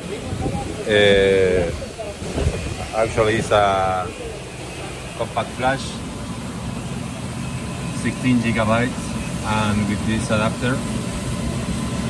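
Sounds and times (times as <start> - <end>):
machine hum and cooling fans: 0.0 - 12.0.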